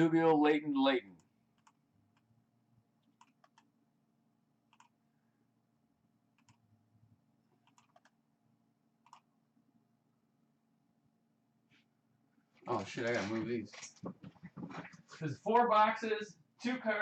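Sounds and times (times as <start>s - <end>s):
faint hum: 0.0s - 17.0s
computer mouse clicks: 1.2s - 2.3s, 3.0s - 3.7s, 4.7s - 5.0s, 6.4s - 6.6s, 7.6s - 8.2s, 9.0s - 9.3s.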